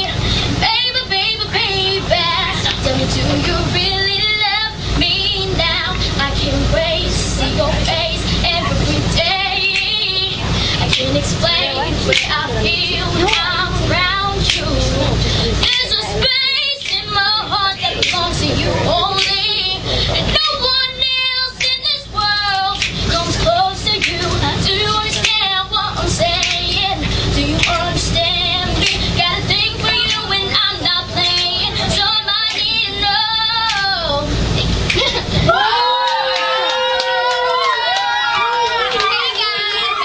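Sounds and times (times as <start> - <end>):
backing music bass: 0.0 - 35.9
young woman singing pop melody: 0.0 - 40.0.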